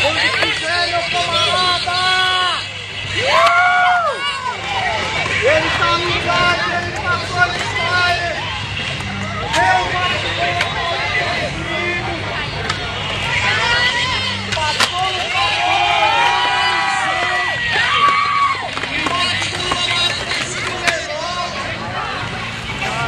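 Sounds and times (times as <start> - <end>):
crowd chatter and shouts: 0.0 - 23.0
skateboard wheels rolling on concrete: 0.0 - 23.0
skateboard clacking on ground: 0.1 - 0.8, 14.4 - 21.5.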